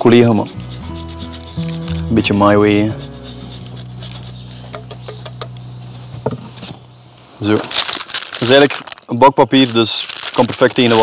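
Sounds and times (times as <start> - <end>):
cheese scraping on grater: 0.0 - 4.4.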